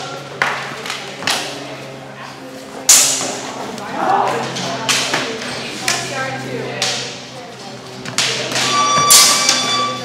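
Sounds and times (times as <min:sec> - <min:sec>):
practice swords clacking: 0:02.9 - 0:03.5
steady high-pitched tone: 0:08.5 - 0:10.0.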